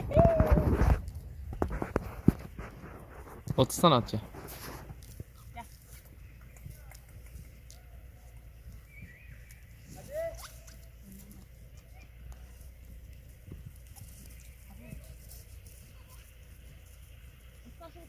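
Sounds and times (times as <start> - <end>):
goats crunching apple: 0.6 - 17.7.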